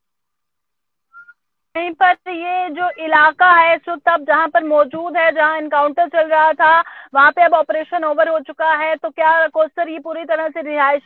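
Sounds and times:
woman speaking: 0:01.8 - 0:11.0.

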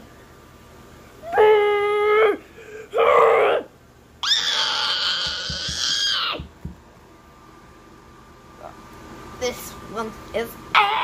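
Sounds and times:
person screaming: 0:01.3 - 0:06.5, 0:10.8 - 0:11.0.

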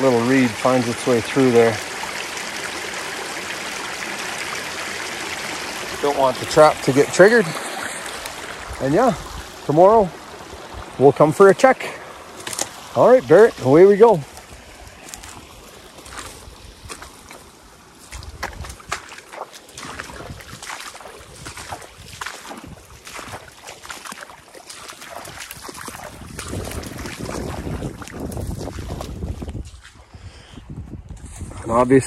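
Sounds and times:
splashing in shallow water and mud: 0:00.0 - 0:30.5
wind buffeting microphone: 0:08.2 - 0:11.0, 0:18.1 - 0:19.0, 0:19.8 - 0:23.5, 0:25.2 - 0:32.0.

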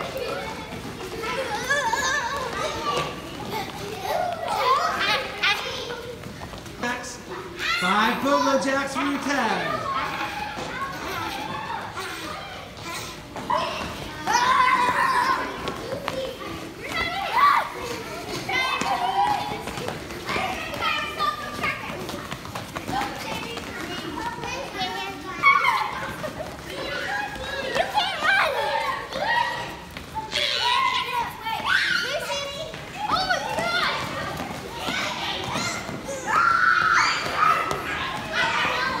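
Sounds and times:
children calling and shouting: 0:00.0 - 0:39.0.

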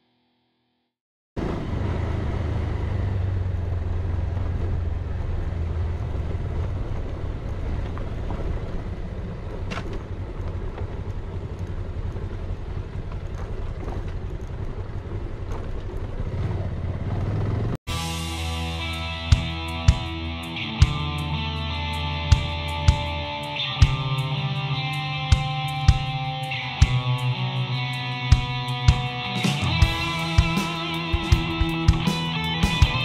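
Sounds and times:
motorcycle engine running: 0:01.4 - 0:33.0
road and wind noise: 0:01.4 - 0:33.0.

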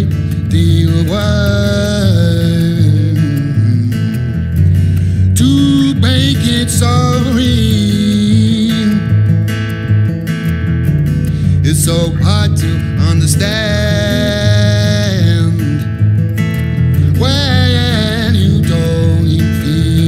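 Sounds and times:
man singing: 0:00.0 - 0:09.4, 0:11.4 - 0:16.1, 0:16.9 - 0:20.0
electric bass playing: 0:00.0 - 0:20.0
strummed acoustic guitar: 0:00.0 - 0:20.0.

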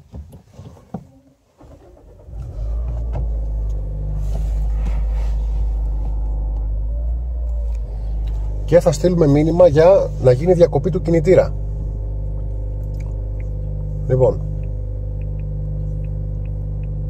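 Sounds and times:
car engine starting and idling: 0:01.4 - 0:17.0
faint clicks: 0:14.4 - 0:17.0.

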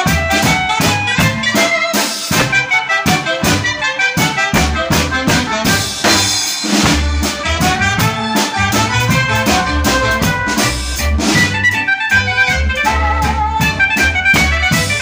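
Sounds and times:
drum kit beat: 0:00.0 - 0:15.0
recorded band music: 0:00.0 - 0:15.0.

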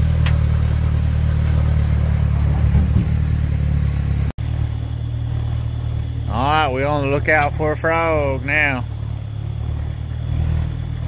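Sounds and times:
outboard motor idling: 0:00.0 - 0:11.0.

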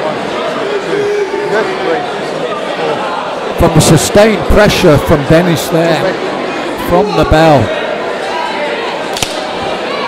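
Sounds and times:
crowd chatter in hall: 0:00.0 - 0:10.0
sharp smack: 0:09.2 - 0:09.4.

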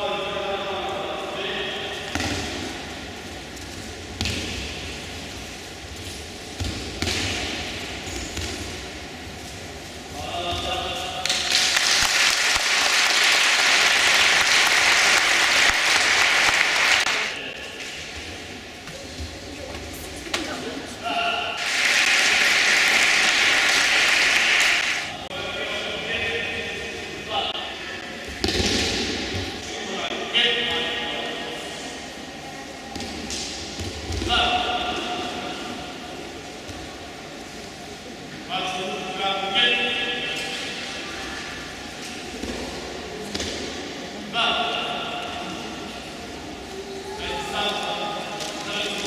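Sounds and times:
audience applauding: 0:11.3 - 0:17.3, 0:21.6 - 0:25.1.

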